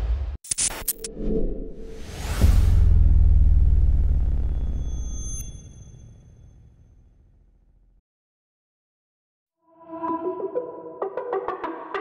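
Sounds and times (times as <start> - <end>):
deep bass boom: 2.4 - 4.9.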